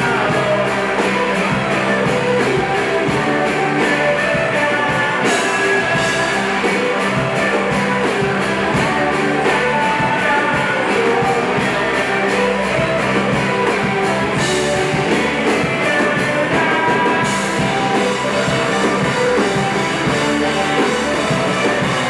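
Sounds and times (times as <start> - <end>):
man singing: 0.0 - 22.0
rock band playing: 0.0 - 22.0.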